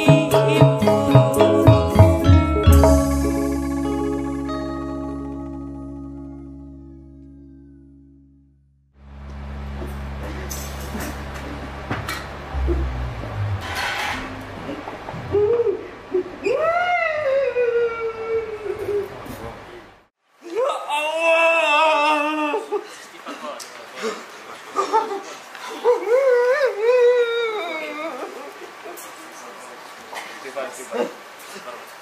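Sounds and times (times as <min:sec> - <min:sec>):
live band playing: 0:00.0 - 0:06.9, 0:12.5 - 0:15.4
sliding melodic notes: 0:00.0 - 0:08.2, 0:12.5 - 0:15.4
held bass notes: 0:00.0 - 0:16.4
cymbal crash: 0:12.4 - 0:15.1.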